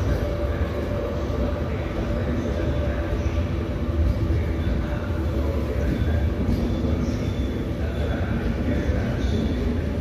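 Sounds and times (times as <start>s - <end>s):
train wheels rumbling on rails: 0.0s - 10.0s.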